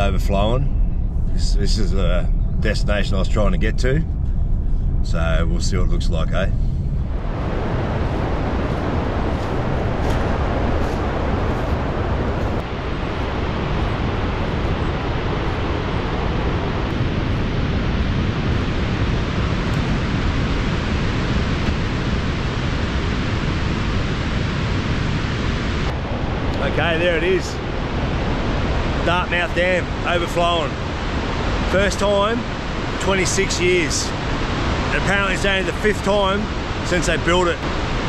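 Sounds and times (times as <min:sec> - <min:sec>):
water rushing down spillway: 0:28.7 - 0:38.0.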